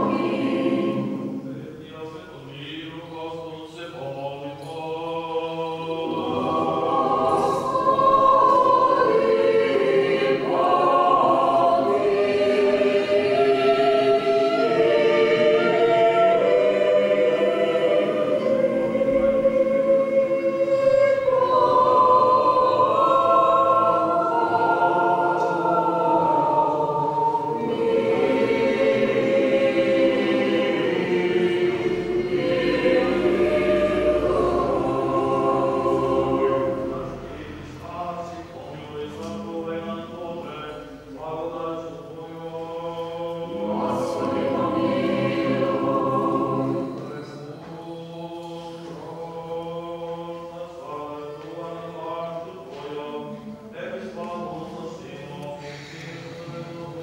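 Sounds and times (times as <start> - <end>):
mixed choir singing a hymn: 0.0 - 57.0.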